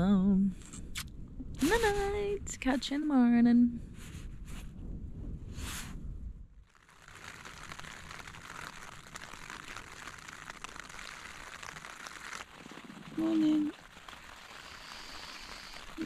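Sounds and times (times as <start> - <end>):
low rumble: 0.0 - 11.8
rain pattering on a tent: 6.6 - 16.0.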